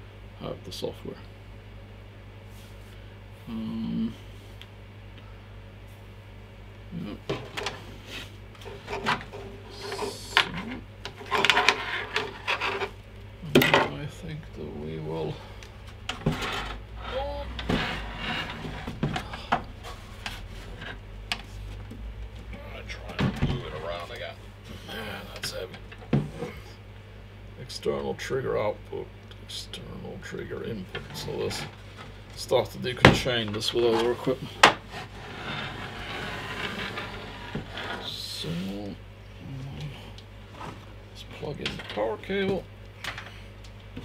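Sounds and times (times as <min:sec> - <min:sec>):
metal case scraping on desk: 0:08.6 - 0:13.0, 0:16.1 - 0:21.0, 0:33.9 - 0:38.1.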